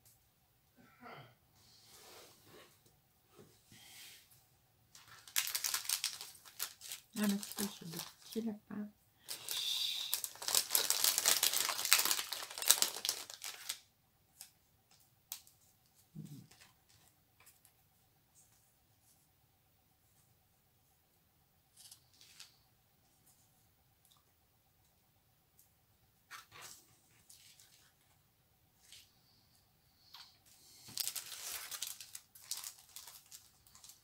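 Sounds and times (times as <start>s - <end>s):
plastic sachet crinkling: 5.0s - 8.6s, 9.2s - 14.5s, 30.8s - 34.0s.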